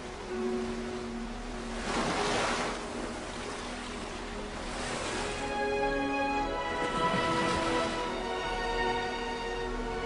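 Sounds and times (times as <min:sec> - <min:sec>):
steady wash of sea: 0:00.0 - 0:10.0.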